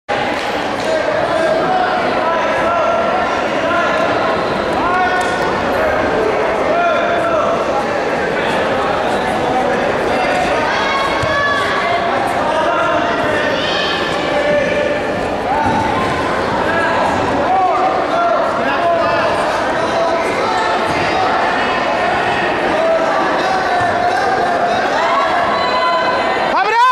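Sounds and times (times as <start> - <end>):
echoing voices calling and chattering: 0.1 - 26.9.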